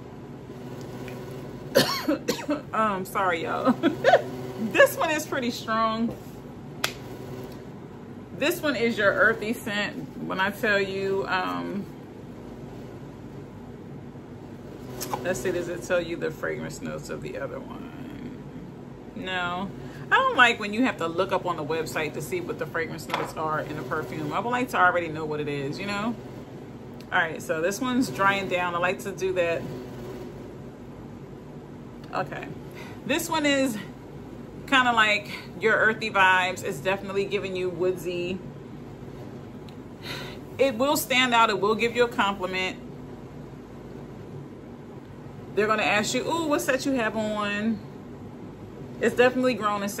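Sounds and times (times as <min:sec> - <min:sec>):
room hum and hiss: 0:00.0 - 0:50.0.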